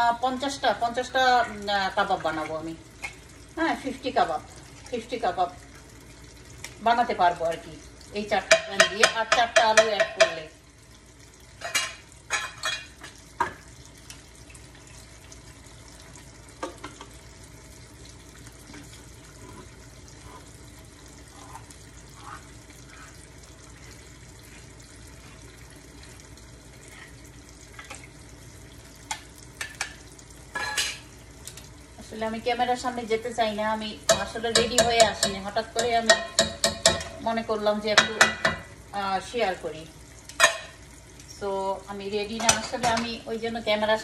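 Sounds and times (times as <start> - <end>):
food sizzling in a pan: 0.0 - 44.0.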